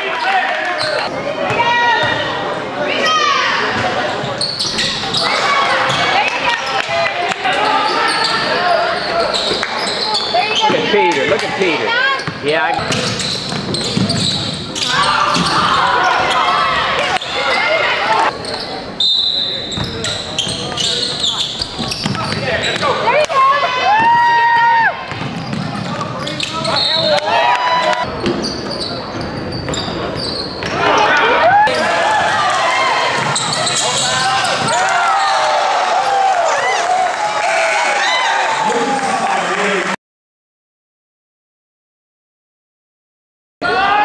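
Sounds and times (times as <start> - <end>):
spectators and players shouting: 0.0 - 12.8, 14.7 - 18.4, 22.2 - 25.2, 26.6 - 28.1, 30.7 - 40.0, 43.6 - 44.0
basketball bouncing on hardwood: 25.1 - 25.9.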